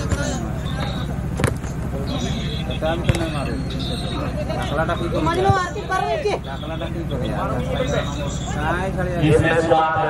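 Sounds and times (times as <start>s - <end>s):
steady low hum: 0.0s - 10.0s
voices: 0.0s - 10.0s.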